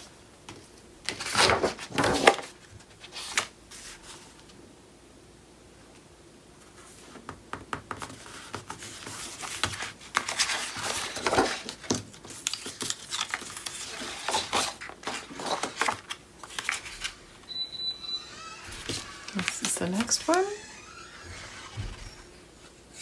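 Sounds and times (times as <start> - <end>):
paper rustling and sliding: 1.1 - 4.6, 8.0 - 17.3, 18.3 - 23.0
thin high tone: 17.5 - 19.4.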